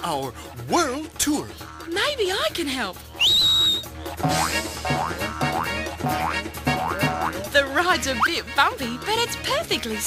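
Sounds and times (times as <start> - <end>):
cartoon music: 1.6 - 10.0
rising high whistle: 3.2 - 3.9
springy boing effects: 4.2 - 7.4.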